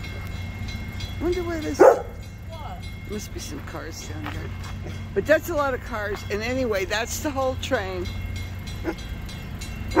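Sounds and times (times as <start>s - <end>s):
freight train rumbling past: 0.0s - 10.0s
train wheels clicking: 0.0s - 10.0s.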